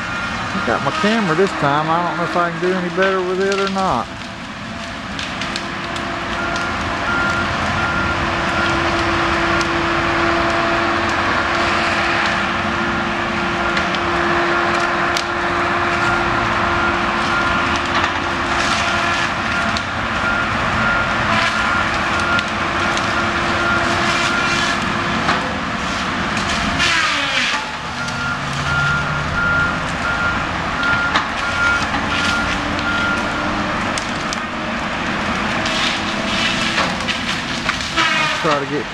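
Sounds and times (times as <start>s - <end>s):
backup alarm beeping: 0.0s - 3.9s, 6.3s - 8.8s, 27.7s - 33.5s
diesel engine running hard: 0.0s - 38.9s
sharp cracks: 0.8s - 7.4s, 29.8s - 38.8s.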